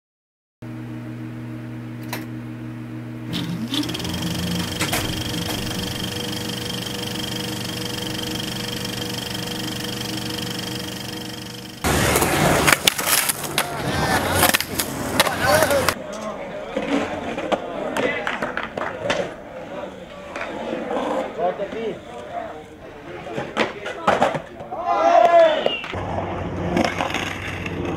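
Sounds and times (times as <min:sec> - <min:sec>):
hum of held tones: 0:00.7 - 0:12.2
skateboard wheels rolling on concrete: 0:11.8 - 0:16.0, 0:16.6 - 0:22.0, 0:23.0 - 0:27.9.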